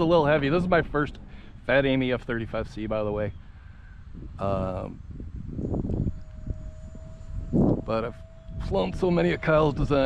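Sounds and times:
ducted fan whine: 0:00.0 - 0:10.0
wind rumble on microphone: 0:00.0 - 0:10.0.

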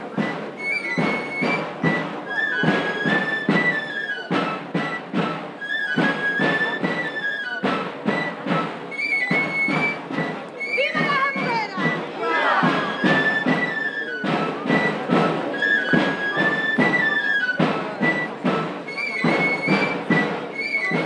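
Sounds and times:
shrill pipe melody: 0:00.0 - 0:21.0
steady drumbeat: 0:00.0 - 0:21.0.

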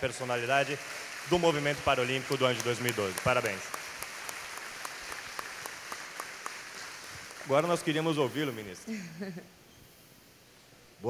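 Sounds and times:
audience applauding: 0:00.0 - 0:08.5.

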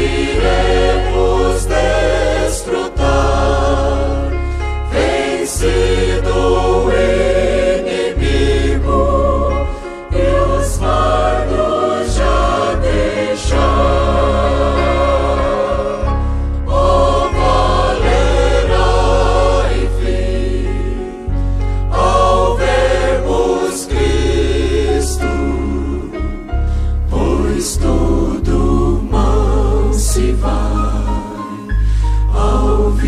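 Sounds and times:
choir singing a hymn: 0:00.0 - 0:33.0
instrumental accompaniment with heavy bass: 0:00.0 - 0:33.0.

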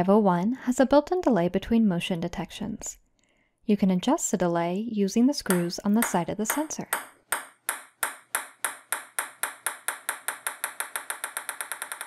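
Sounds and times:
ping-pong ball bouncing on table: 0:05.5 - 0:12.0.

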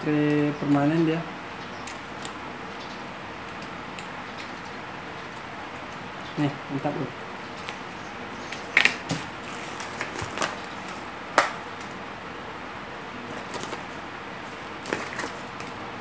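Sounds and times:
steady background hiss: 0:00.0 - 0:16.0
handling noises on tabletop: 0:08.8 - 0:12.0, 0:13.2 - 0:15.8.

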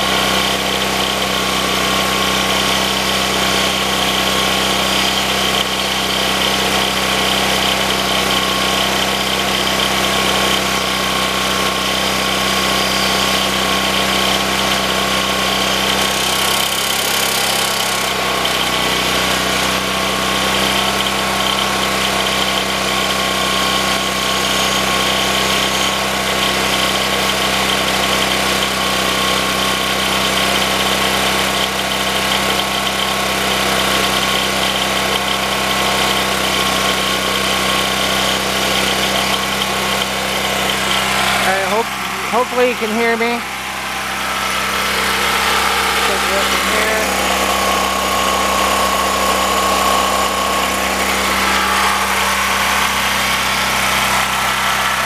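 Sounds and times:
blower whine: 0:00.0 - 0:55.0
generator running: 0:00.0 - 0:55.0.

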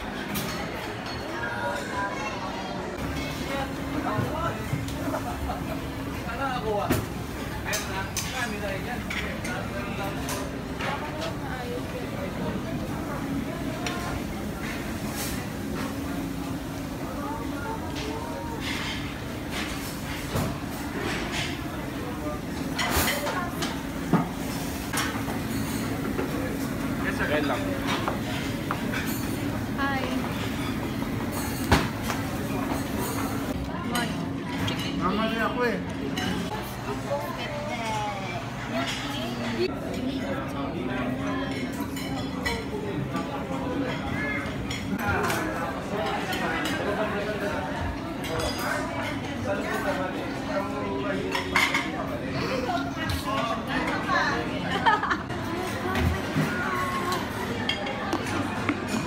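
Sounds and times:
many voices chattering: 0:00.0 - 0:59.0
dishes and cutlery clinking: 0:22.7 - 0:35.1, 0:51.2 - 0:52.1.

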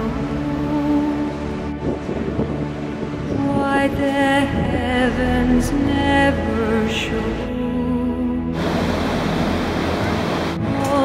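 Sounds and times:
song music: 0:00.0 - 0:11.0
ocean surf breaking: 0:08.6 - 0:11.0.

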